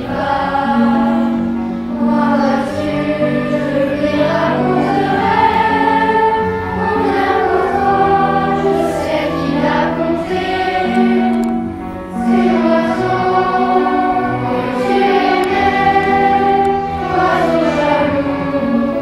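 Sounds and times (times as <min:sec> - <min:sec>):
instrumental accompaniment: 0:00.0 - 0:19.0
youth choir singing: 0:00.0 - 0:19.0.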